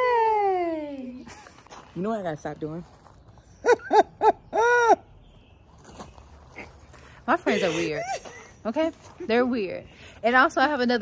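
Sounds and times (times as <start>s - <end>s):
woman making hooting noises: 0.0s - 1.0s, 3.7s - 5.0s.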